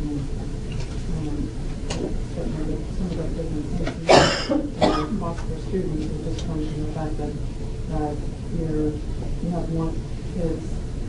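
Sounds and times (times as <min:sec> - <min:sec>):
person coughing: 0:04.1 - 0:05.2.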